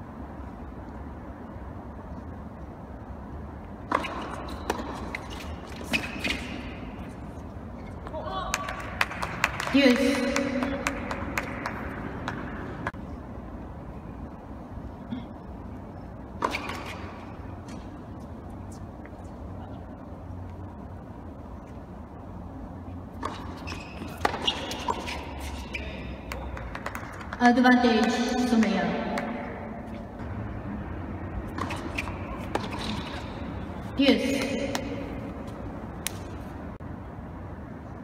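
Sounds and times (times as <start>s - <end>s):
low hum of hall: 0.0s - 38.0s
racket hitting ball: 3.8s - 7.1s, 23.2s - 25.3s
shoe squeak: 23.2s - 26.3s, 31.5s - 33.4s.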